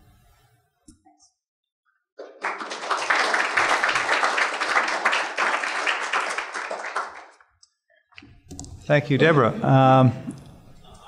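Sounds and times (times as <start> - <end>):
audience applauding: 2.2 - 7.5.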